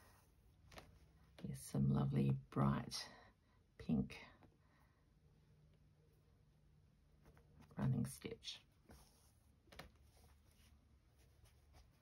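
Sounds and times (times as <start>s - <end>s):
fabric rustling: 0.0s - 1.4s, 8.6s - 12.0s.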